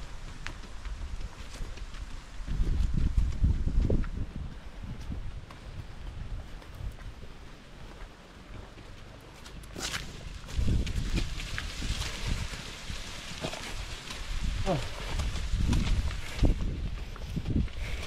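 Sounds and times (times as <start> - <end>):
wind bumps on microphone: 0.0 - 7.2, 10.3 - 18.0
footsteps on dirt path: 0.0 - 18.0
brush rustling: 9.7 - 18.0.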